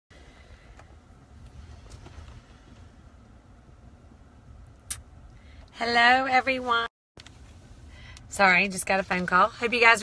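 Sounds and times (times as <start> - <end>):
low rumble inside car: 0.1 - 10.0.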